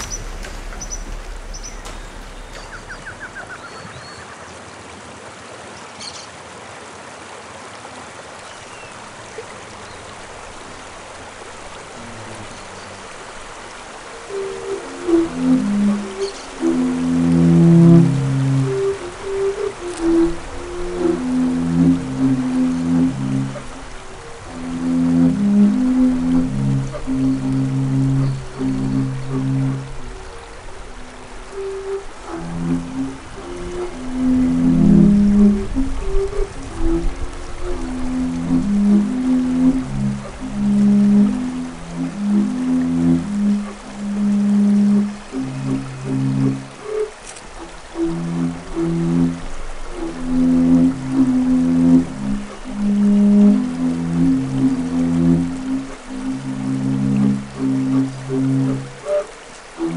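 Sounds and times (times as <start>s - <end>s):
low wind instruments ensemble: 0.0s - 3.6s, 10.1s - 59.9s.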